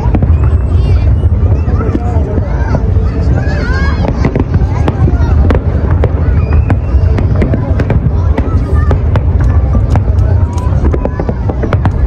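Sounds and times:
fireworks bangs and crackles: 0.0s - 12.0s
low rumble: 0.0s - 12.0s.

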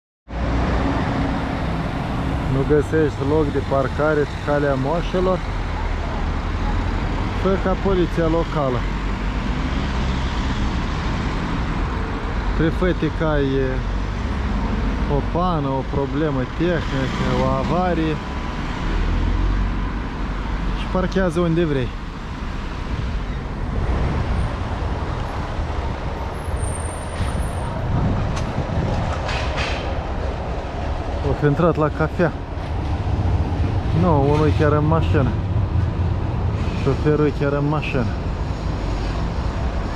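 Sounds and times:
city street traffic: 0.3s - 39.9s.

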